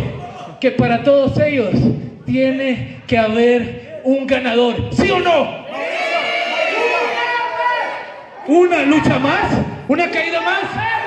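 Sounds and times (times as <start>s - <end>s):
crowd shouting: 5.6s - 9.5s.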